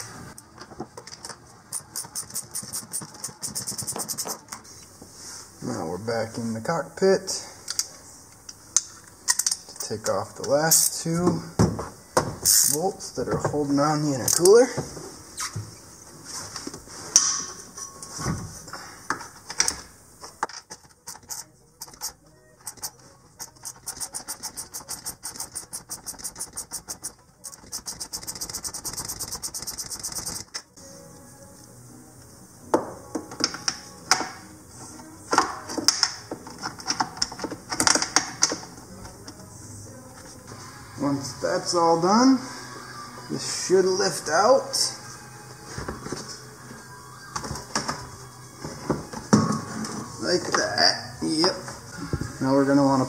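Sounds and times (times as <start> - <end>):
ratchet wrench clicking: 12.5 - 12.8, 21.0 - 30.5.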